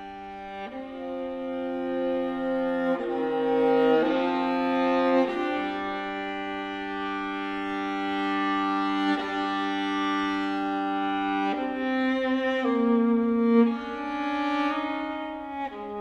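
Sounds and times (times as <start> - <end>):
bowed viola long notes: 0.0 - 16.0.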